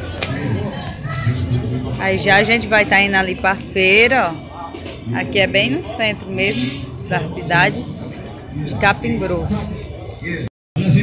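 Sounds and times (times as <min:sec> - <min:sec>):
indistinct background voices: 0:00.0 - 0:11.0.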